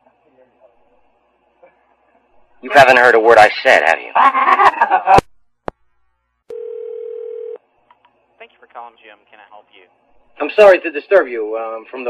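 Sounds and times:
telephone line tone: 6.5s - 7.6s.

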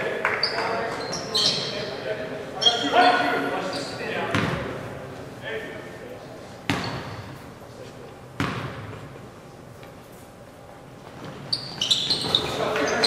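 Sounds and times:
voices of players and spectators: 0.0s - 10.7s, 11.5s - 13.0s
basketball bouncing on hardwood floor: 8.4s - 9.0s.

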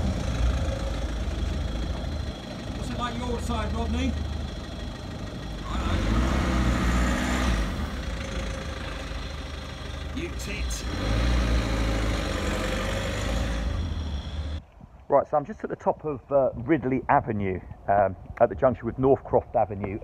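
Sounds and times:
van engine revving: 0.0s - 14.6s.

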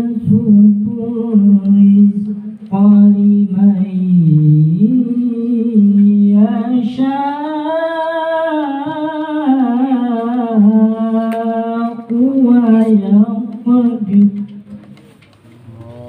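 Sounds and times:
man chanting a devotional recitation: 15.6s - 16.0s.

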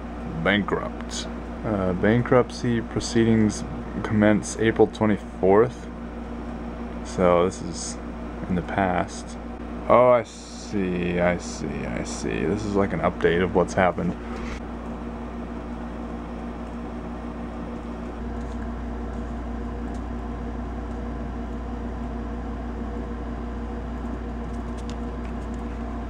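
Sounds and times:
mechanical room hum: 0.0s - 26.0s.

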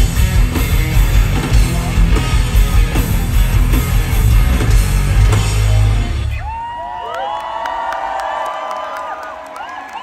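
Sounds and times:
rock band final chord: 0.0s - 6.3s
crowd cheering and whistling: 6.2s - 10.0s.

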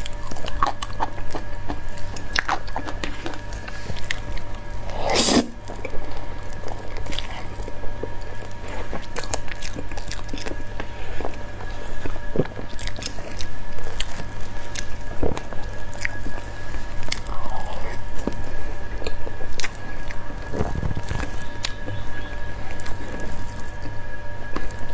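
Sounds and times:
biting and chewing soft cake: 0.0s - 24.9s.

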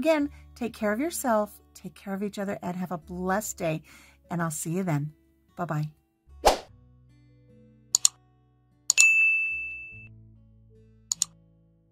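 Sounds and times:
quiet background music: 0.0s - 11.9s
mouse click: 8.0s - 8.2s, 11.1s - 11.4s
bright bell ding: 8.9s - 10.1s.

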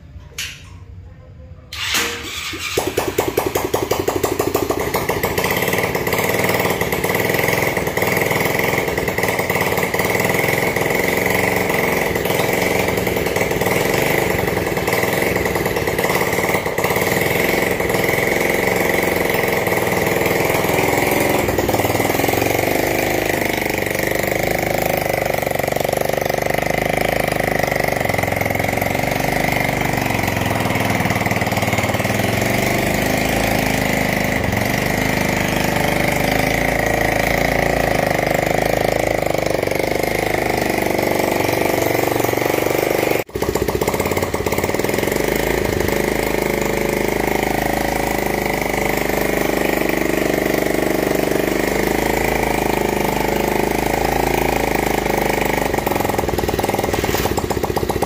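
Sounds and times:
small engine running: 1.7s - 58.0s.

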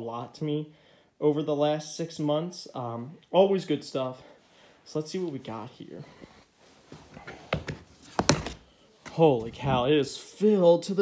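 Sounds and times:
plastic lid handling: 7.2s - 9.2s.

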